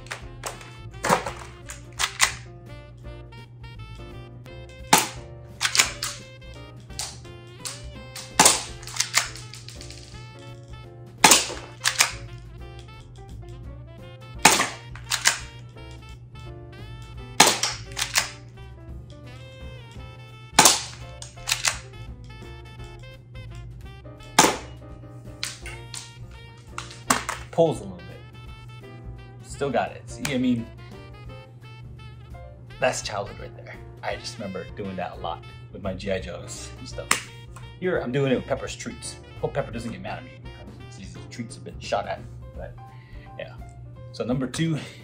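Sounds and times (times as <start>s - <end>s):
rifle clicks: 0.0s - 2.5s, 4.9s - 10.2s, 11.2s - 12.3s, 14.5s - 15.7s, 17.4s - 18.4s, 20.6s - 21.9s, 24.4s - 24.8s, 25.4s - 27.5s, 37.1s - 37.7s
toy air rifle shots: 0.0s - 2.5s, 4.9s - 10.2s, 11.2s - 12.3s, 14.4s - 15.6s, 17.4s - 18.4s, 20.6s - 21.8s, 24.4s - 24.8s, 25.4s - 27.5s, 37.0s - 37.4s
background music: 0.0s - 45.0s.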